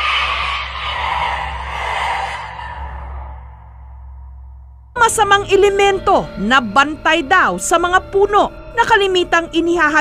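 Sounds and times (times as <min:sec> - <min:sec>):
eerie breathy whooshing: 0:00.0 - 0:04.8
low drone: 0:00.0 - 0:09.4.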